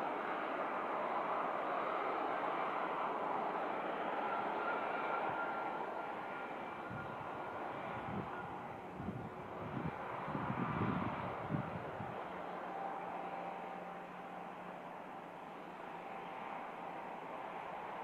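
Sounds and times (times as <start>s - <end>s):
jet engines running: 0.0s - 18.0s.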